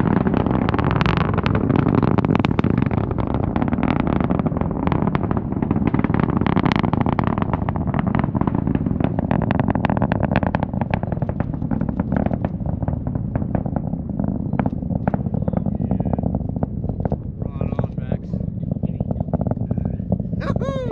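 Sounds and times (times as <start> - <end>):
rocket engines rumbling and crackling: 0.0 - 20.9.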